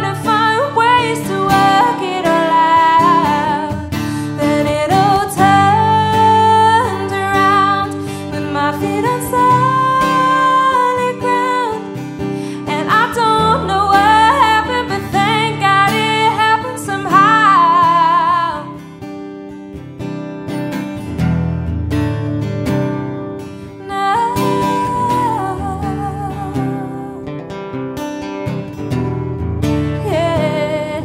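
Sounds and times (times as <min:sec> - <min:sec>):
woman singing with vibrato: 0:00.0 - 0:18.8, 0:23.8 - 0:27.4, 0:30.0 - 0:31.0
acoustic guitar strummed and plucked: 0:00.0 - 0:31.0.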